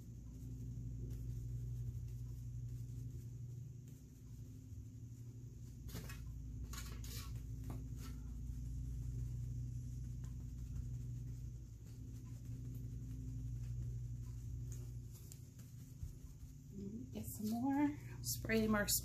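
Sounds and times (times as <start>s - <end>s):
soft taps and rustles: 0.0s - 19.0s
steady low hum: 0.0s - 19.0s.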